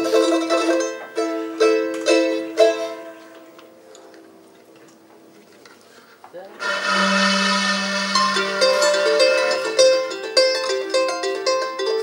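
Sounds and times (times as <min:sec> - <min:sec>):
strummed ukulele chord ringing: 0:00.0 - 0:03.4, 0:06.6 - 0:12.0.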